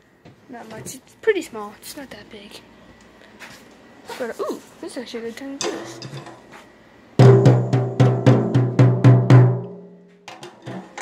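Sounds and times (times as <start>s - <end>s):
drum beats with low ring: 7.2s - 10.9s.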